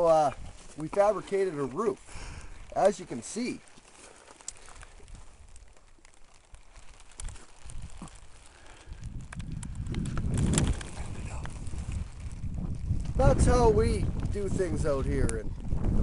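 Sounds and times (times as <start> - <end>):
faint rustling: 0.0 - 13.7
wind buffeting microphone: 4.7 - 5.7, 6.5 - 16.0.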